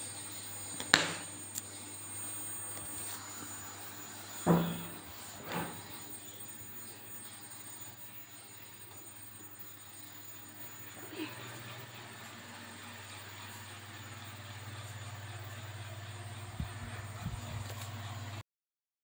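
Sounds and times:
low background hum: 0:00.0 - 0:18.4.

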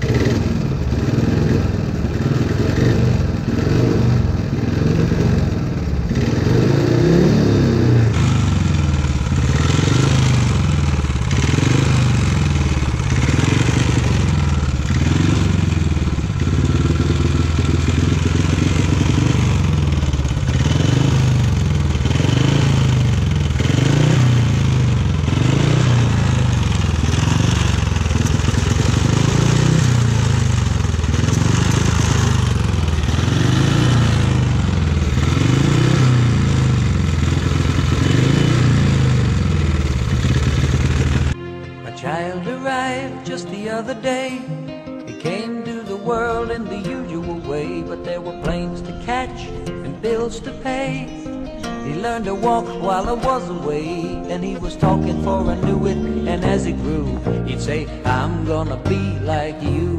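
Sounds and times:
motorcycle engine revving: 0:00.0 - 0:41.4, 0:46.4 - 0:59.9.

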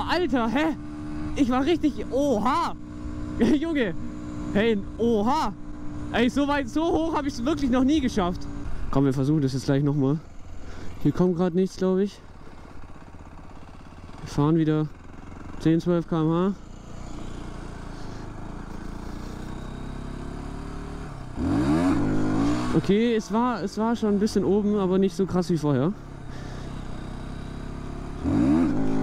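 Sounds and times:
motorcycle engine running: 0:00.0 - 0:29.0.

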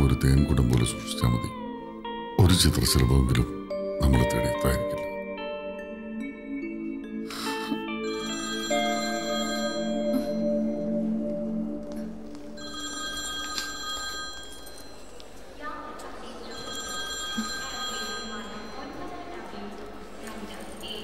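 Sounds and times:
soft film music: 0:00.0 - 0:15.4
telephone ringing: 0:07.8 - 0:11.0, 0:12.5 - 0:15.2, 0:16.5 - 0:19.0.

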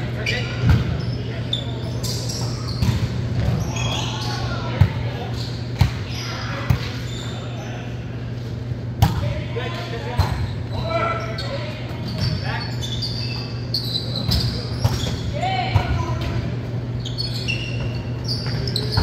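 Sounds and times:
players calling out: 0:00.1 - 0:08.2.

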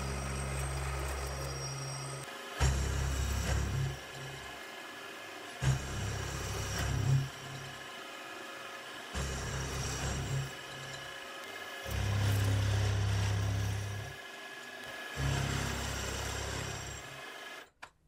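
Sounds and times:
milling machine spindle whine: 0:00.0 - 0:17.6
end mill cutting aluminium: 0:00.0 - 0:17.7.

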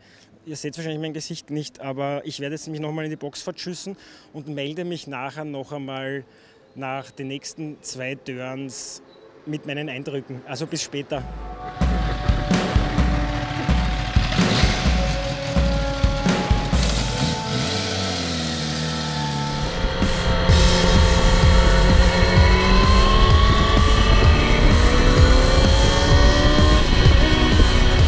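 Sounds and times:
background music with steady beat: 0:11.1 - 0:28.0
motorcycle engine accelerating hard: 0:11.7 - 0:28.0.

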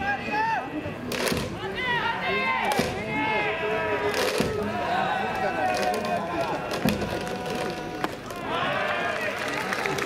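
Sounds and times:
crowd voices calling: 0:00.0 - 0:10.0.

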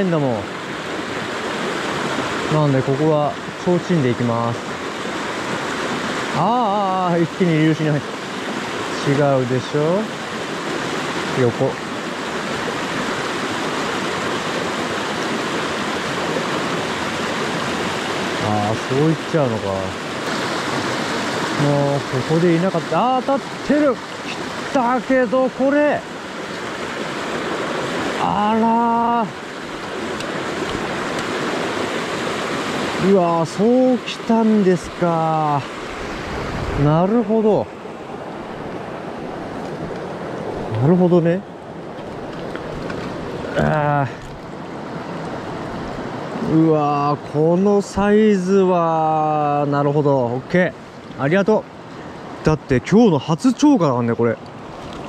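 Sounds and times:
stream rushing over rocks: 0:00.0 - 0:55.0.

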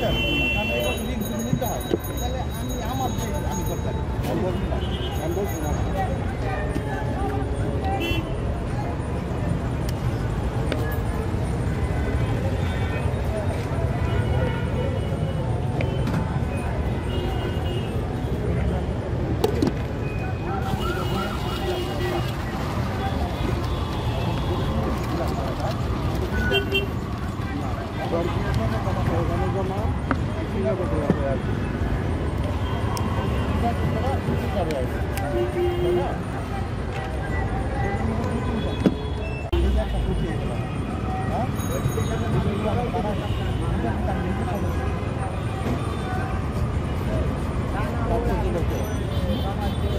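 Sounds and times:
people talking: 0:00.0 - 0:17.8, 0:18.4 - 0:31.7, 0:32.4 - 0:49.9
traffic rumble: 0:00.0 - 0:49.9.

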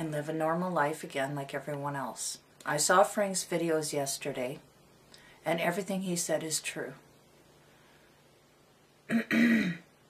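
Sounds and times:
woman clearing her throat: 0:09.1 - 0:09.9.

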